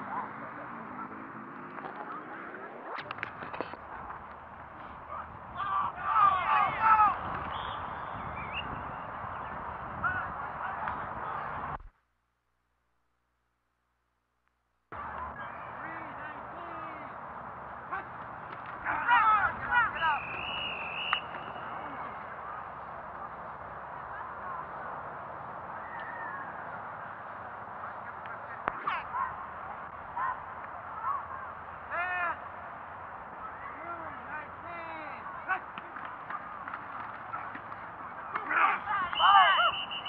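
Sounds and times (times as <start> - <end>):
men shouting and calling: 4.8 - 8.0, 15.0 - 24.8, 27.6 - 40.0.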